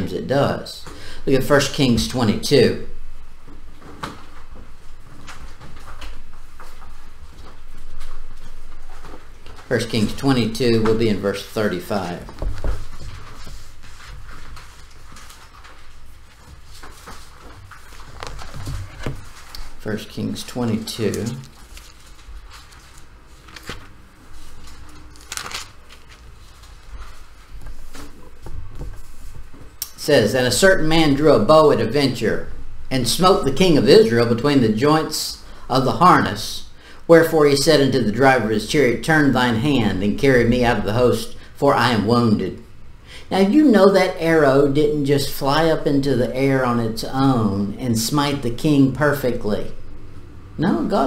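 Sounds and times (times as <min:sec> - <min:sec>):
low steady hum: 0:00.0 - 0:51.0
soft paper rustles: 0:03.6 - 0:29.8
pages turning: 0:03.8 - 0:29.7.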